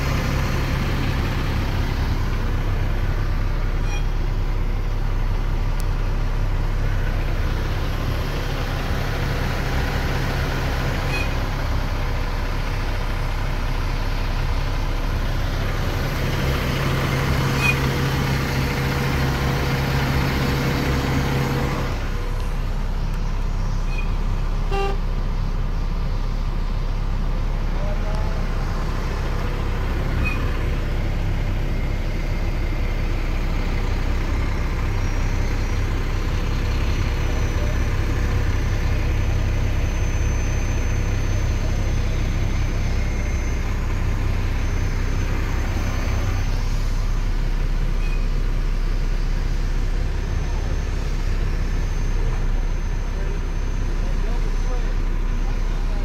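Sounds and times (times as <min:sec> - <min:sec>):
diesel truck engine idling: 0:00.0 - 0:56.0.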